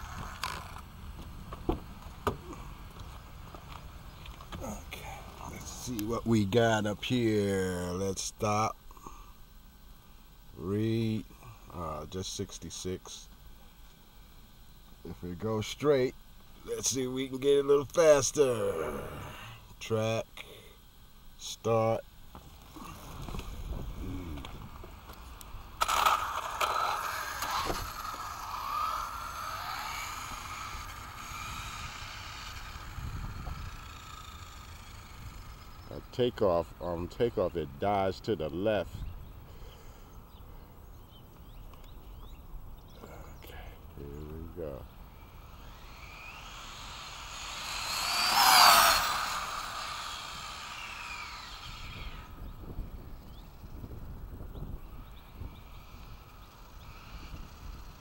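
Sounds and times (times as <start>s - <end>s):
high electric motor whine: 0.0s - 58.0s
tyre noise on asphalt: 22.3s - 35.2s, 45.4s - 52.6s
toy car launching crack: 25.4s - 35.5s, 45.4s - 52.4s.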